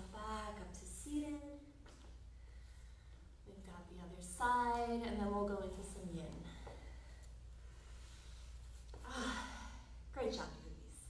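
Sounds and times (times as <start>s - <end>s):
woman sighing: 9.0s - 9.9s.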